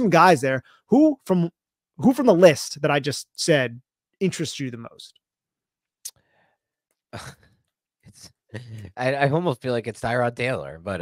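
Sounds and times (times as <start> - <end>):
man laughing breathily: 7.2 - 7.5, 8.1 - 9.0.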